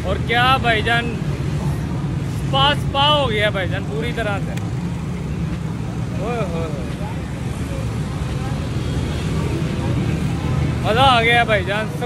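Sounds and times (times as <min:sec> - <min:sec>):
faint voices: 0:00.0 - 0:12.0
traffic rumble: 0:00.0 - 0:12.0.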